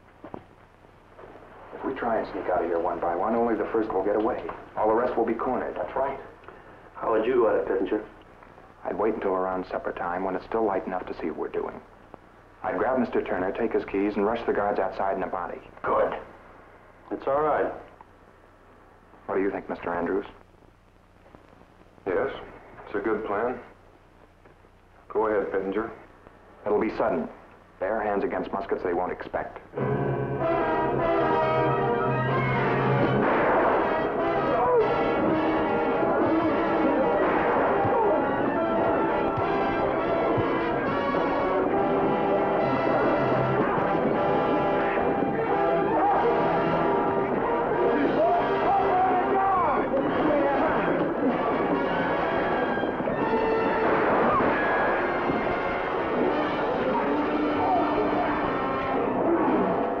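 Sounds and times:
orchestral music led by brass: 0:29.8 - 0:37.3, 0:38.2 - 0:48.8, 0:55.1 - 0:59.0.

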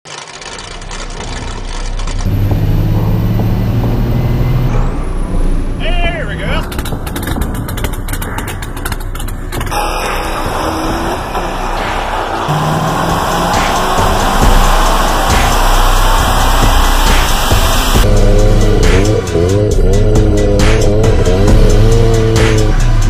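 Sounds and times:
vehicle engines running: 0:00.1 - 0:23.0
man shouting excitedly: 0:05.8 - 0:06.6.

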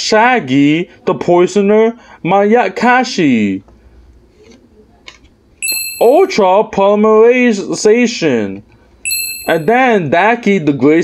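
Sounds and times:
bright ding: 0:05.6 - 0:06.3, 0:09.0 - 0:09.8.

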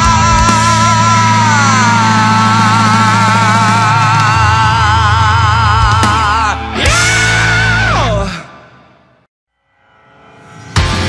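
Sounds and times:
rock song: 0:00.0 - 0:09.2, 0:10.7 - 0:11.0.

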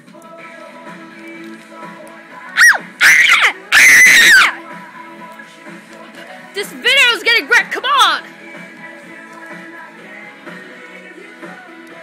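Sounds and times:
faint pop music: 0:00.0 - 0:12.0
child screaming: 0:02.6 - 0:04.6.

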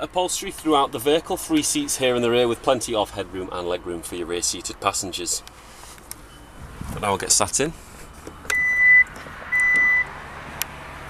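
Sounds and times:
electronic warning beep: 0:08.4 - 0:10.1.

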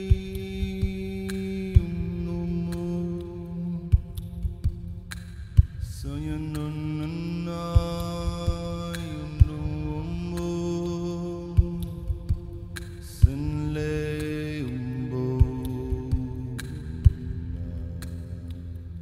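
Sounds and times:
men singing chant-like chords: 0:00.0 - 0:04.7, 0:06.0 - 0:19.0
soft low thumps: 0:00.0 - 0:10.8, 0:11.4 - 0:14.4, 0:15.3 - 0:18.5.

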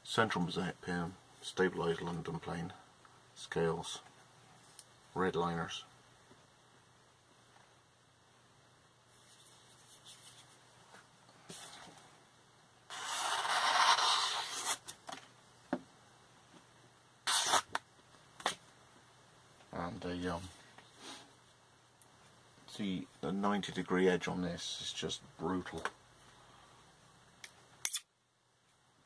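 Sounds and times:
faint handling at a workbench: 0:09.1 - 0:12.2
paper catalogue rubbing: 0:12.9 - 0:14.8, 0:17.3 - 0:17.7.

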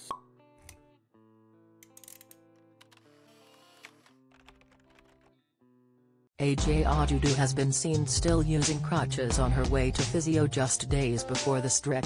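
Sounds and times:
soft background music: 0:06.4 - 0:12.0.

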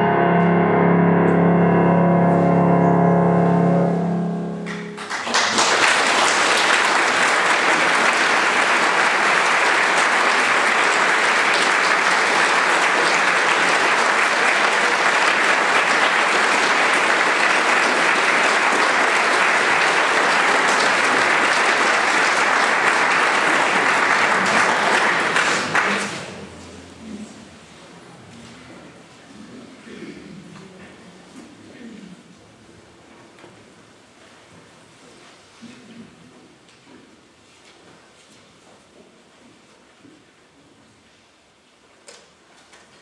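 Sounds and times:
piano chord: 0:00.0 - 0:05.2
audience applauding: 0:04.6 - 0:27.9.

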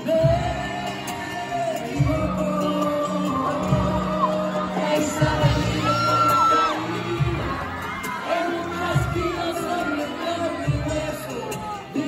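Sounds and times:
acoustic guitar: 0:00.0 - 0:12.0
man singing: 0:00.0 - 0:12.0
audience whooping: 0:03.4 - 0:10.9.

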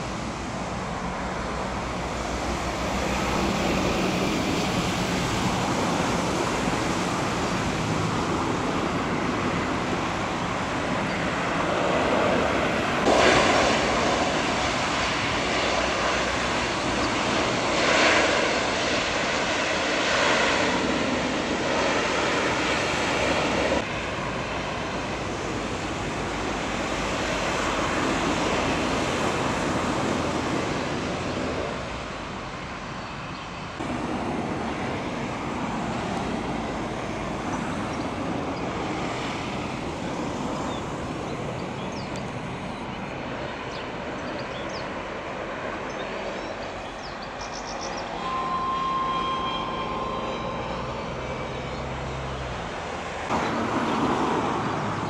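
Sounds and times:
turboprop engines and propellers running: 0:00.0 - 0:55.0.

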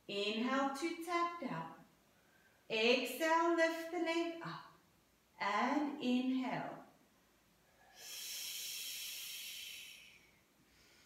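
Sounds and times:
breath exhaled through lips: 0:07.8 - 0:11.0.

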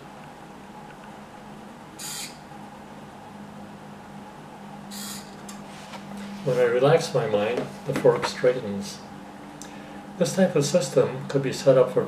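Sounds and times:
servo motor low hum: 0:02.0 - 0:02.4, 0:04.9 - 0:06.8.

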